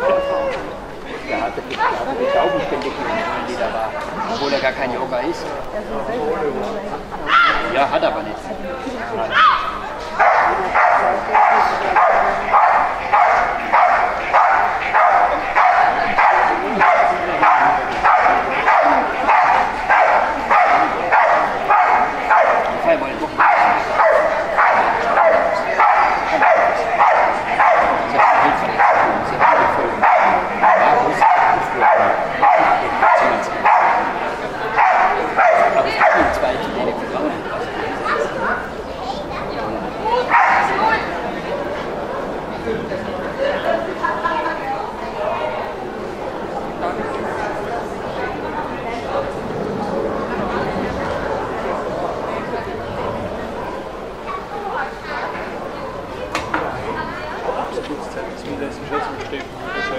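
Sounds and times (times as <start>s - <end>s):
dog barking rhythmically: 10.2s - 22.6s, 23.4s - 34.1s, 34.8s - 36.3s.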